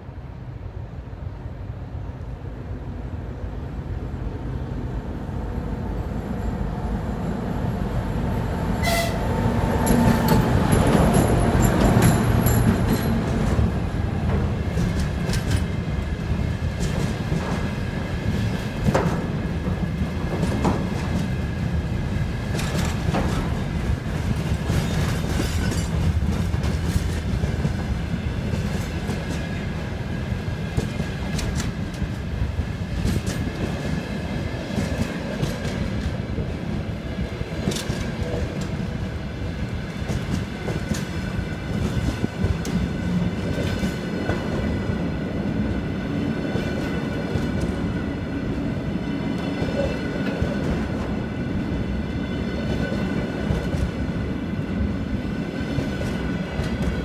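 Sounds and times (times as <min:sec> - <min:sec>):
freight train rumbling past: 0:00.0 - 0:57.0.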